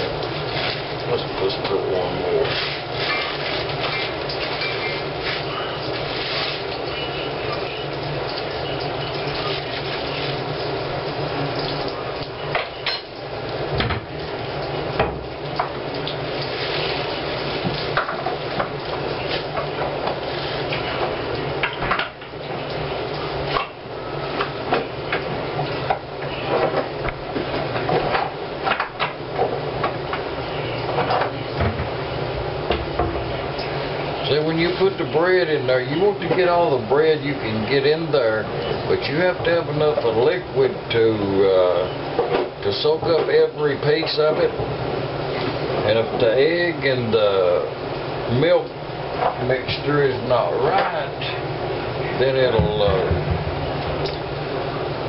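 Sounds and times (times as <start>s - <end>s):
steady low hum: 0.0s - 55.0s.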